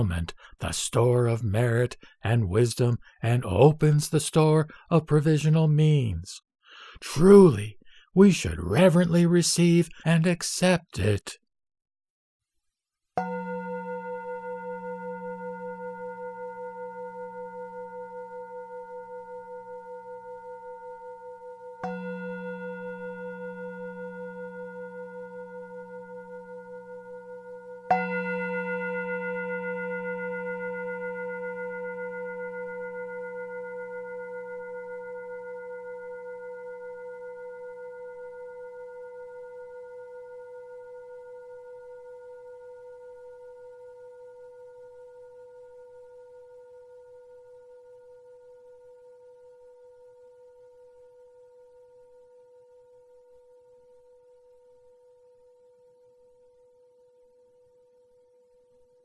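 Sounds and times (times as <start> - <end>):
bowl bell ringing: 13.2 - 56.9.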